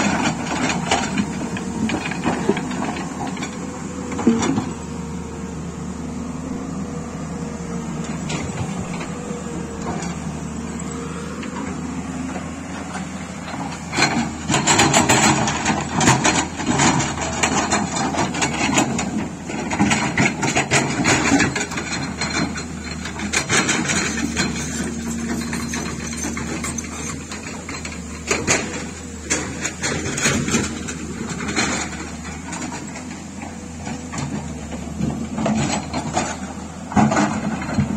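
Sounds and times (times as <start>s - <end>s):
excavator diesel engine running: 0.0s - 37.9s.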